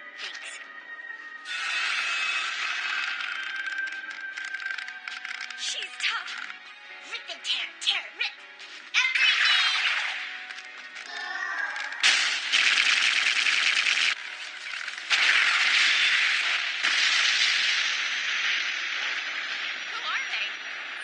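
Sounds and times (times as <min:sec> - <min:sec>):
rapid gunfire sound effects: 0:11.9 - 0:20.5.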